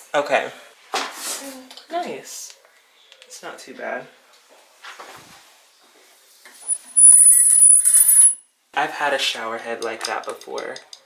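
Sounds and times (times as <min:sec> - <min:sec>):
curtain rings squealing on rod: 0:06.6 - 0:08.4.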